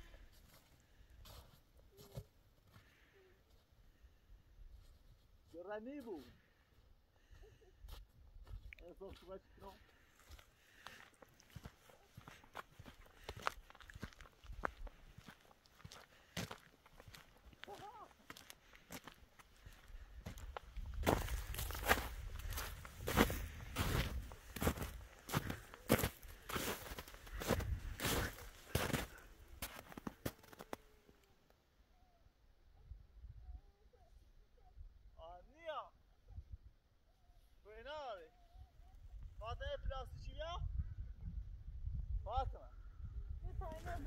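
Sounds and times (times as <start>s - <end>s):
footsteps in snow: 0.0s - 3.7s, 7.9s - 30.9s.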